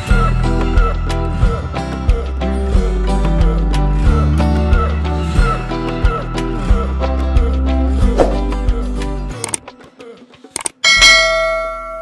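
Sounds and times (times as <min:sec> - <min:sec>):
bell ding chime: 0:10.8 - 0:12.0.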